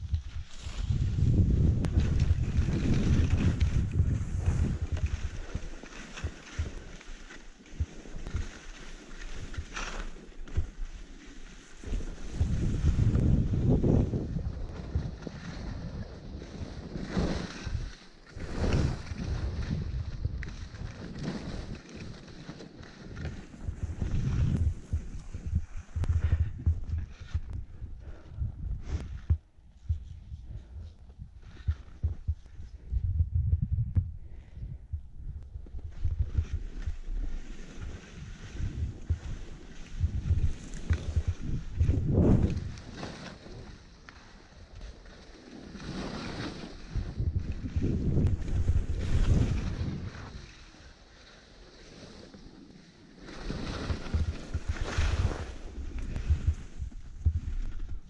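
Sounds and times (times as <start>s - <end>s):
wind buffeting microphone: 0.0s - 5.7s, 11.9s - 21.8s, 23.2s - 43.9s, 46.7s - 50.5s, 53.8s - 58.0s
skis scraping over snow: 0.1s - 28.2s, 35.7s - 58.0s.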